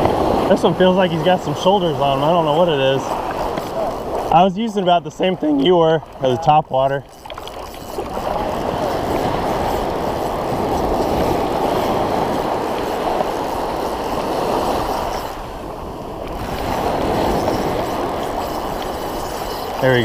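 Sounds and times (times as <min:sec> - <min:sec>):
ocean surf breaking: 0:00.0 - 0:20.0.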